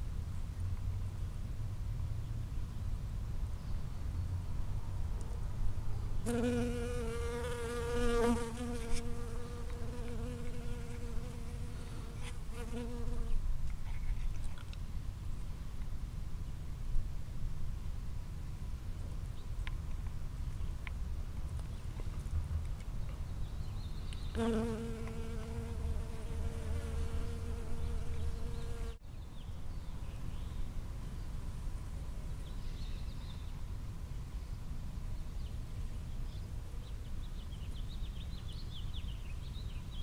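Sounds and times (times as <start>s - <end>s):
honeybee buzzing: 6.3s - 13.3s, 24.4s - 29.0s.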